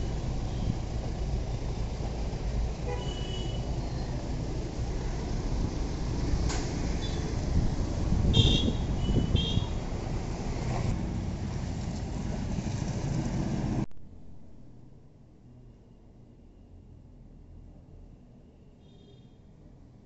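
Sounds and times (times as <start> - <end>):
street traffic: 0.0 - 20.0.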